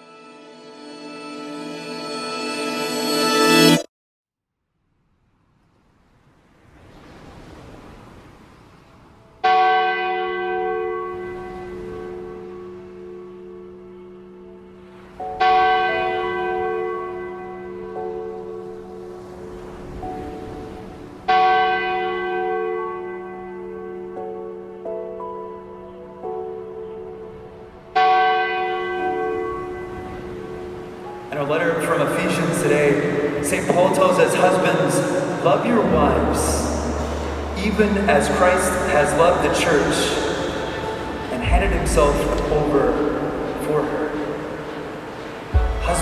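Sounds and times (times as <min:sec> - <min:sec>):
lower bell note: 0:09.4 - 0:20.5, 0:21.2 - 0:27.3, 0:27.9 - 0:31.3, 0:35.0 - 0:44.2
church bell ringing: 0:09.4 - 0:46.0.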